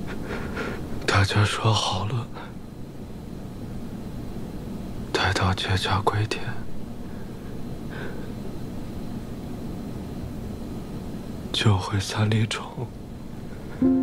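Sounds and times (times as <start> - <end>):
low background hum: 0.0 - 14.0.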